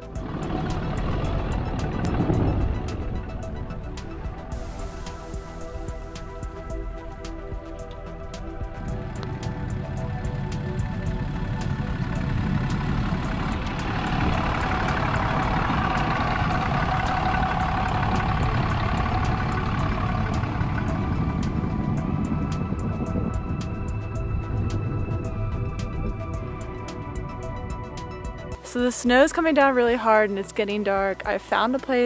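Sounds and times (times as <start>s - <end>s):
tyres rushing on snow: 0.0s - 27.4s
truck engine: 0.0s - 28.7s
background music: 0.0s - 32.0s.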